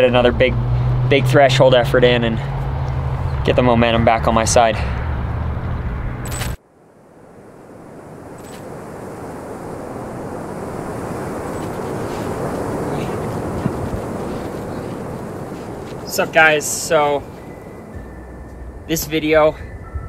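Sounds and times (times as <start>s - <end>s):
steady rushing noise: 0.0s - 20.0s
low rumble: 1.9s - 6.4s, 17.2s - 20.0s.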